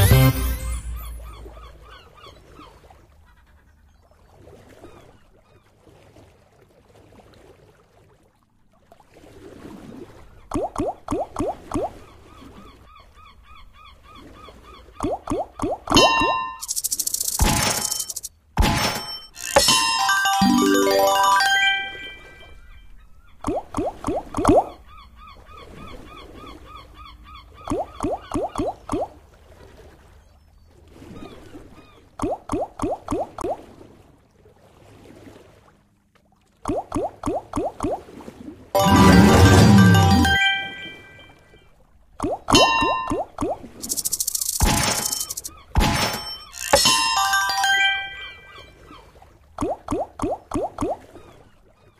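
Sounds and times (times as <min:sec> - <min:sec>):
looping slot game tune: 0:00.0 - 0:01.5, 0:15.9 - 0:22.6, 0:38.8 - 0:41.4, 0:42.5 - 0:48.8
rising chimes: 0:00.0 - 0:01.6, 0:15.9 - 0:22.6, 0:38.8 - 0:41.6, 0:42.5 - 0:48.8
reels clicking to a stop: 0:16.6 - 0:18.3, 0:43.8 - 0:45.5.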